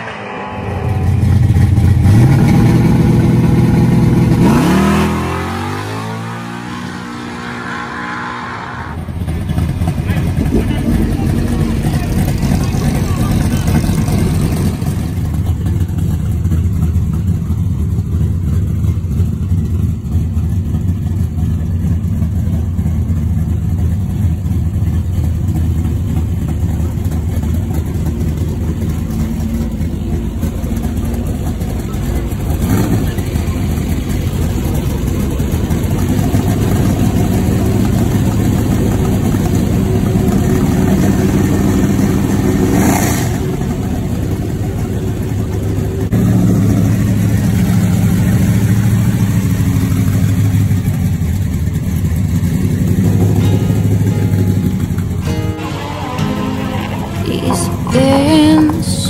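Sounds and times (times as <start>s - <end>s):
car engine at full throttle: 0.0s - 59.0s
engine rumbling at low speed: 0.0s - 59.0s.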